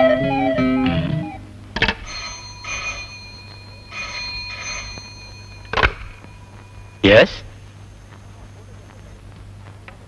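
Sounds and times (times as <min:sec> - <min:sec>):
telephone bell ringing: 0:02.0 - 0:07.1.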